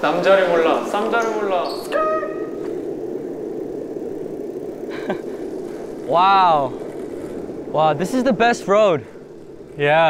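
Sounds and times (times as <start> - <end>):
bicycle road noise: 0.0 - 10.0
rushing wind: 0.0 - 10.0.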